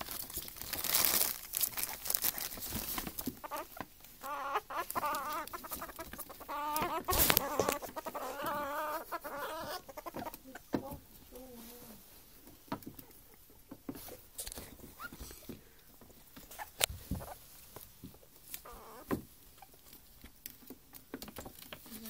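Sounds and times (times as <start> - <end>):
paws scrabbling on wooden floor: 0.0 - 11.4.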